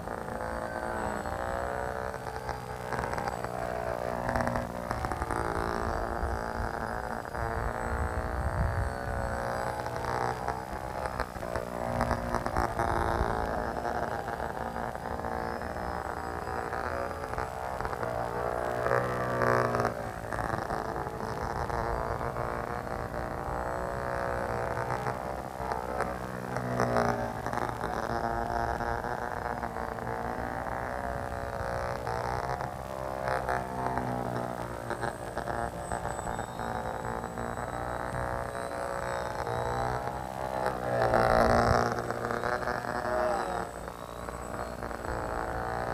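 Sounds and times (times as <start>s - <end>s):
electric model plane motor buzzing: 0.0s - 45.9s.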